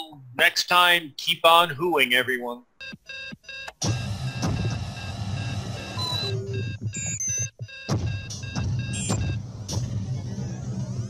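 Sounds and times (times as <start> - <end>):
high electronic beeping: 2.8 - 9.4
sliding electronic chirps: 2.8 - 9.4.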